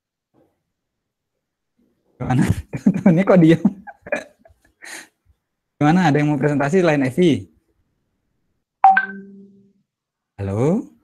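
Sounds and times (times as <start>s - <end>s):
electronic notification chime: 8.8s - 9.6s.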